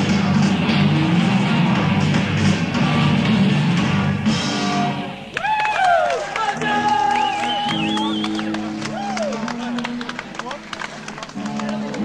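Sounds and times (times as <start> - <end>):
rock band playing live: 0.0 - 5.2.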